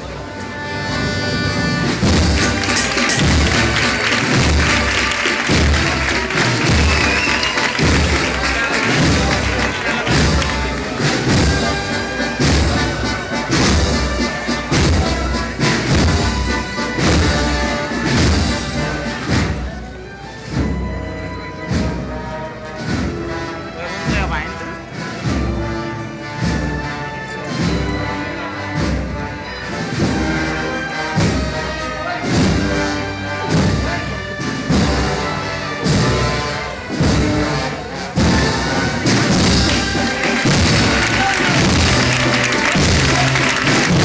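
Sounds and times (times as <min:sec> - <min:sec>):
band playing slow march: 0:00.0 - 0:44.0
bass drum beating: 0:02.0 - 0:09.5.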